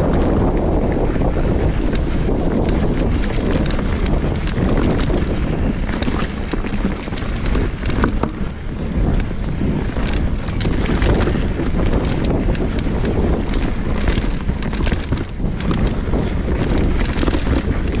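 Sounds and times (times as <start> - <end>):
bike clicks and rattles: 0.0 - 18.0
bike tyre noise on dirt: 0.0 - 18.0
wind rushing over microphone: 0.0 - 18.0.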